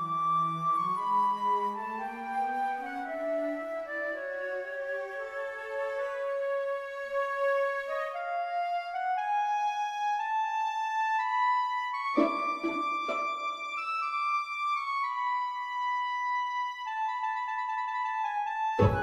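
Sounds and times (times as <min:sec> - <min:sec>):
slow orchestral melody: 0:00.0 - 0:17.2, 0:18.6 - 0:19.0
low orchestral accents: 0:12.0 - 0:14.0, 0:18.8 - 0:19.0.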